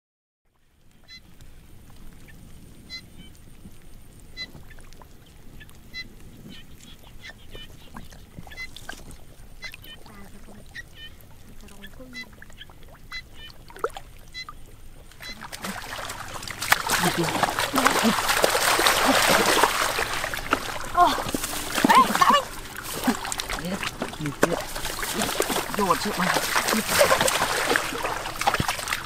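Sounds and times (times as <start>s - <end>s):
water splashing: 3.2s - 29.0s
short pitched animal calls: 15.2s - 29.0s.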